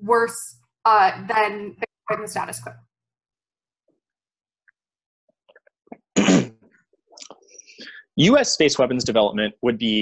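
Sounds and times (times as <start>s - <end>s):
person sneezing: 6.2s - 6.6s.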